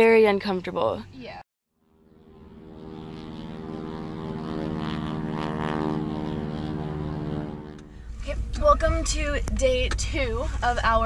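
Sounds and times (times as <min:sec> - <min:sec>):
airplane engine drone: 0:01.8 - 0:10.6.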